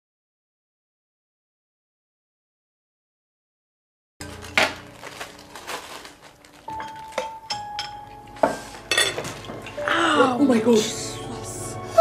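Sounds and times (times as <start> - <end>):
dishes and cutlery clinking: 6.6 - 10.3.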